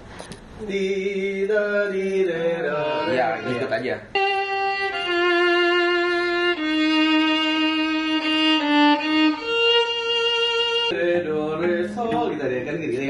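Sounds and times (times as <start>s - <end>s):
violin playing long bowed notes: 2.5s - 11.0s.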